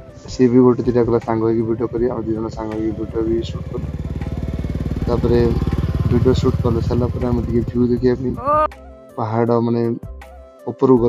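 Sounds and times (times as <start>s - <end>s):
motorcycle engine riding past: 2.0s - 8.4s
person speaking: 8.3s - 8.7s.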